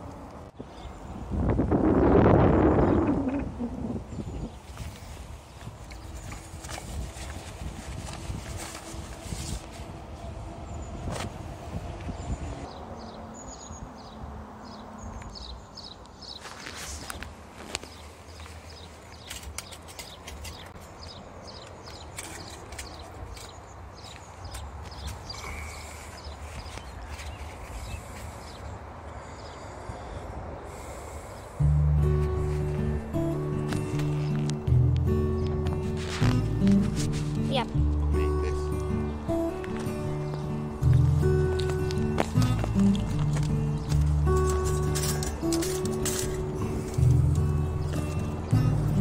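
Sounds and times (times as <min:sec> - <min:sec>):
motorway traffic rumble: 0:00.0 - 0:49.0
steps and scrapes on gravel: 0:04.5 - 0:10.2, 0:16.3 - 0:28.6, 0:32.1 - 0:38.0, 0:38.6 - 0:48.8
vehicle passing by: 0:30.4 - 0:49.0.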